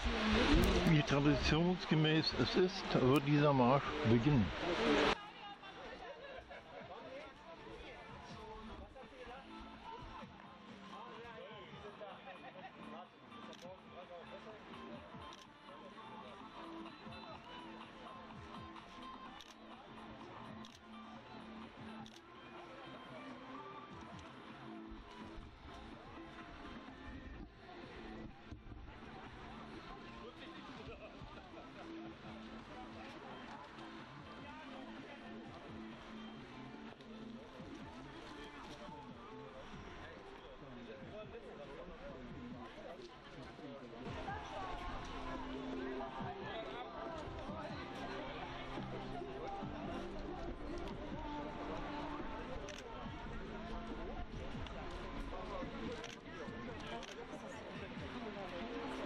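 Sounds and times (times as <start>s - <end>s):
people chattering outdoors: 0.0s - 59.0s.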